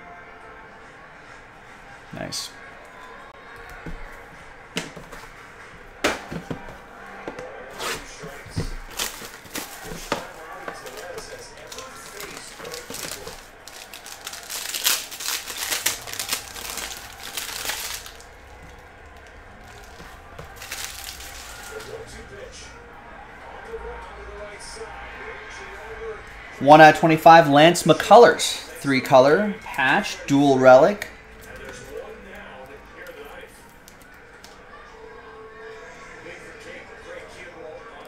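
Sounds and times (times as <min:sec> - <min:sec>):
plastic and foil wrapper crinkling: 0:08.6 - 0:22.0.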